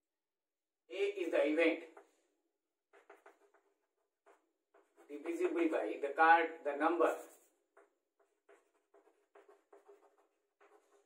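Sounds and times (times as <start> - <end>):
chalk scratching on blackboard: 2.9 - 5.8, 7.0 - 11.0.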